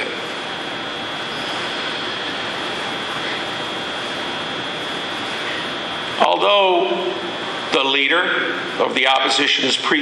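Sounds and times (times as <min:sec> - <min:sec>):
high steady whine: 0:00.0 - 0:10.0.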